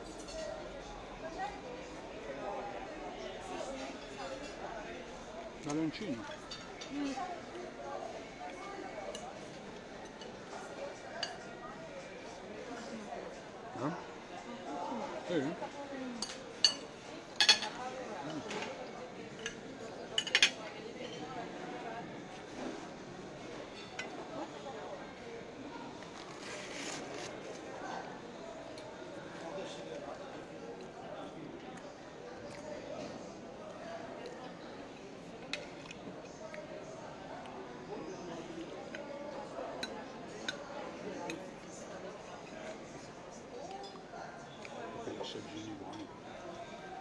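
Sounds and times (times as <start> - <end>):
murmur of voices: 0.0 - 47.0
forks clinking on ceramic plates: 16.2 - 18.6, 19.4 - 21.2.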